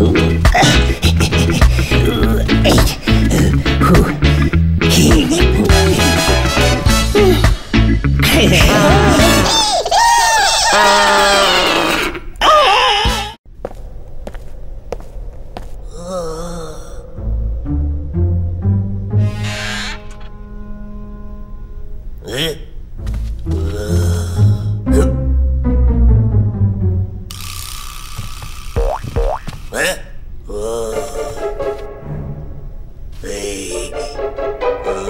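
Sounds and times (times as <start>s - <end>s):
cartoon voices wailing: 8.3s - 13.4s
eerie hiss: 13.8s - 18.0s, 19.1s - 20.3s
squeaky rising creaks: 19.2s - 20.4s.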